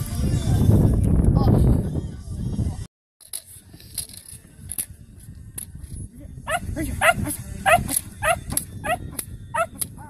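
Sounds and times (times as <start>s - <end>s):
puppy barking: 6.5s - 9.0s, 9.6s - 9.8s.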